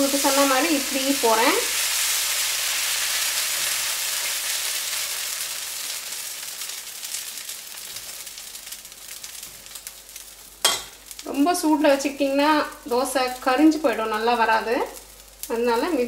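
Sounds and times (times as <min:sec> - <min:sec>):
batter sizzling on a hot pan: 0:00.0 - 0:16.0.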